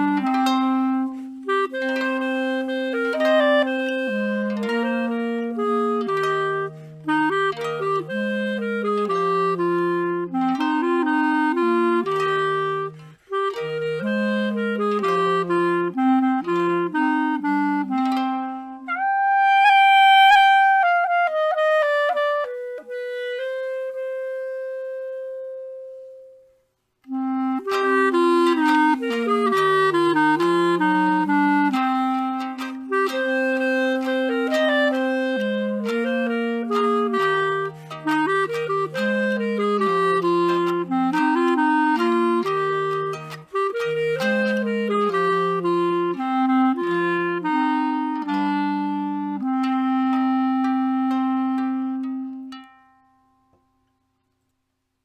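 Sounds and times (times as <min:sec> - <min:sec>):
clarinet duet: 0:00.0 - 0:54.4.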